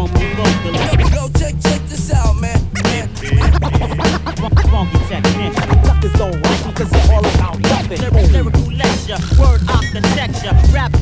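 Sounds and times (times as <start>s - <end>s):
hip-hop beat with heavy kick drums: 0.0s - 11.0s
vinyl scratches on a turntable: 0.0s - 11.0s.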